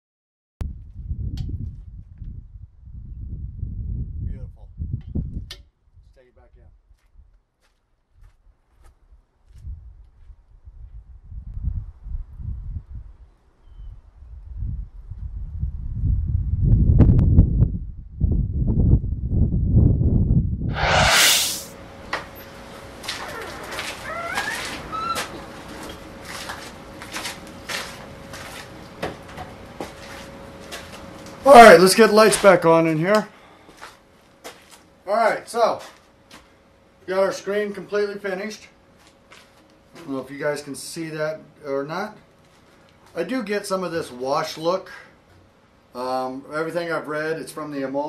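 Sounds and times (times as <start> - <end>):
wind buffeting microphone: 0.7 - 6.0, 9.6 - 13.2, 14.4 - 20.7.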